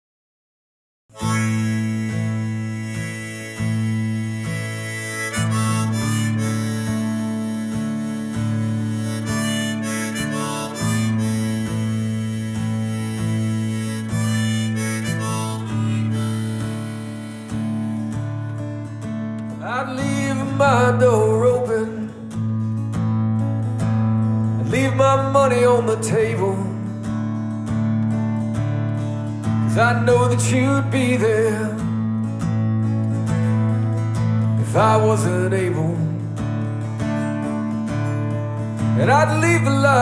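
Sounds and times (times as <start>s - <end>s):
harmonica playing: 1.1s - 40.0s
strummed acoustic guitar: 1.1s - 40.0s.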